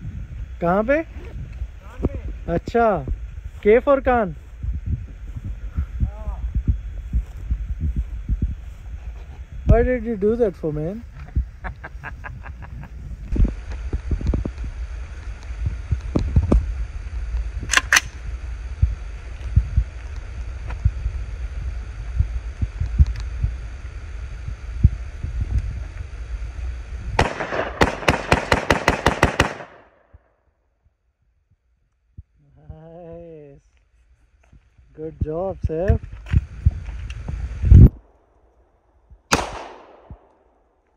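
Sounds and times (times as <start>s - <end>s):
rifle shots: 17.7s - 18.2s, 27.2s - 30.0s, 39.3s - 40.4s.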